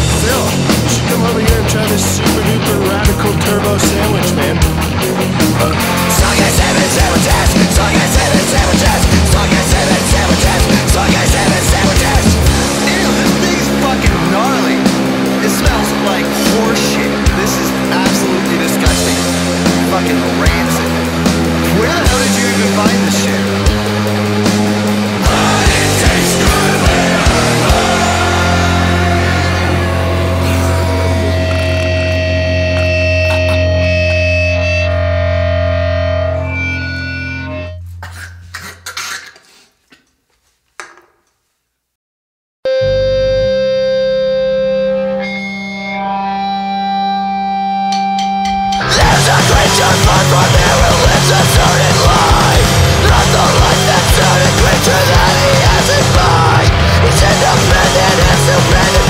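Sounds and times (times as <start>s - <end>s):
distorted guitar and bass chords: 0.0s - 38.8s, 42.7s - 59.0s.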